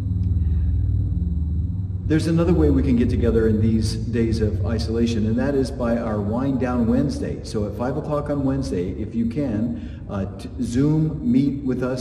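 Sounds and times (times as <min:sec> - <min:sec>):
faint high-pitched whine: 0:00.0 - 0:12.0
low rumbling hum: 0:00.0 - 0:12.0.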